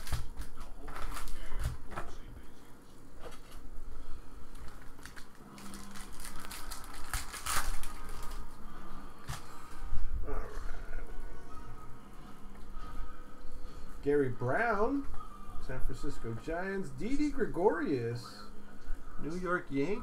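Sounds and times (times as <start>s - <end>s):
foil wrapper crinkling: 0.0s - 1.8s, 4.5s - 8.6s.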